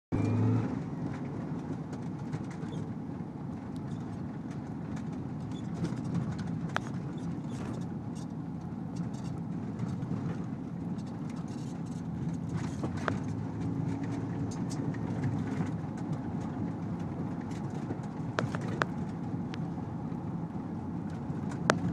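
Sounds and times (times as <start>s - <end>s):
vehicle engine and road noise: 0.1s - 21.9s.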